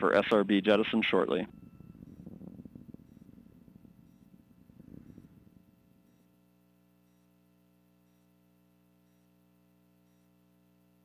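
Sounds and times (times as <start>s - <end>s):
low rumble with crackle: 1.0s - 6.6s
short high beeps: 1.5s - 2.3s.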